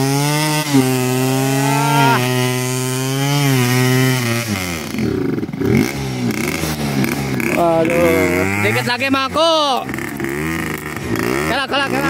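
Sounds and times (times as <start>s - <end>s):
trail bike engine revving: 0.0s - 12.0s.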